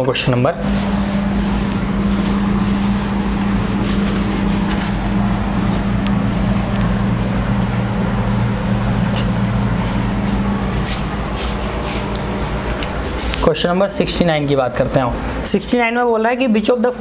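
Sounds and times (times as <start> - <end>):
cloth wiping a whiteboard: 0.0 - 14.0
low machine hum: 0.0 - 17.0.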